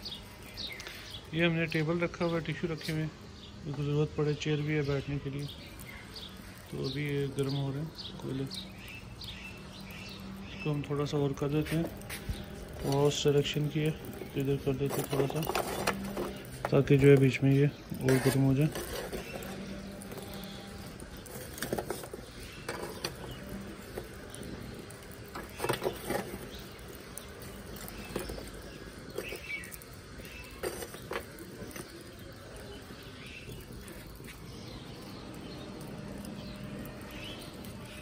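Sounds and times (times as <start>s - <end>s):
charcoal fire crackling and popping: 0.0s - 38.0s
fire hissing: 0.0s - 38.0s.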